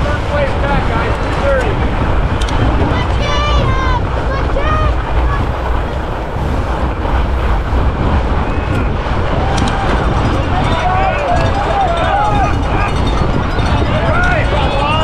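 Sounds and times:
wind rumble on microphone: 0.0s - 15.0s
spectators shouting and cheering: 8.3s - 15.0s.

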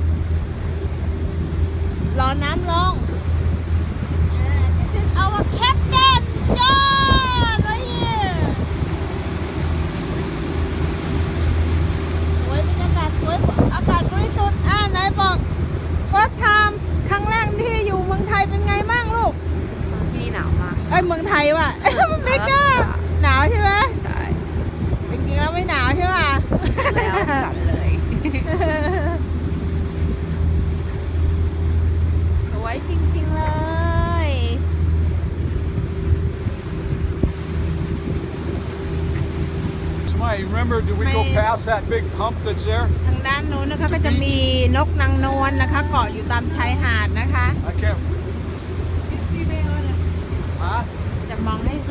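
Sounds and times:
boat motor humming: 0.0s - 51.9s
water rushing past hull: 0.0s - 51.9s
wind rushing: 1.0s - 28.5s.

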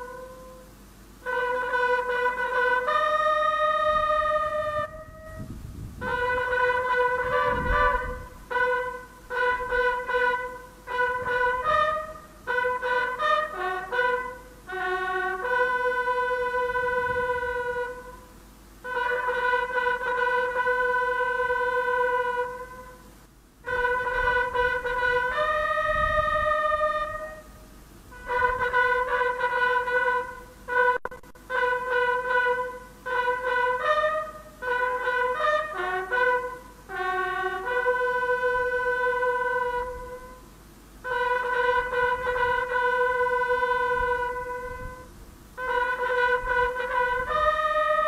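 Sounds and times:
bugle playing held notes: 0.0s - 48.0s.

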